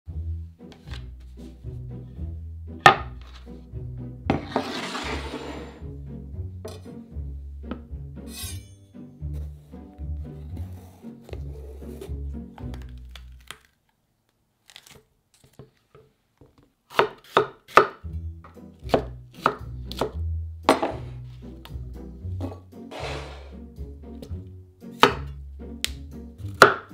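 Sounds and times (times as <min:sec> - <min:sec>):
background music: 0:00.1 - 0:13.5, 0:17.7 - 0:26.9
knife chopping on wooden board: 0:02.8 - 0:03.2, 0:16.9 - 0:18.1, 0:18.8 - 0:21.1, 0:25.0 - 0:25.3, 0:26.5 - 0:26.9
object scraping across wood: 0:04.3 - 0:05.9, 0:22.4 - 0:23.6.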